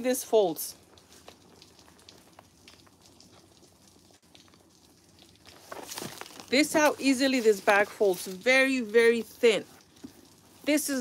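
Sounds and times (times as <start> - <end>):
canvas bag rustling: 5.4 - 10.6.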